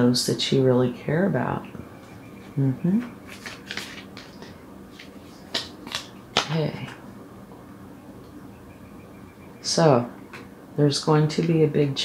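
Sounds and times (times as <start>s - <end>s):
cards flicking and tapping: 3.3s - 6.6s.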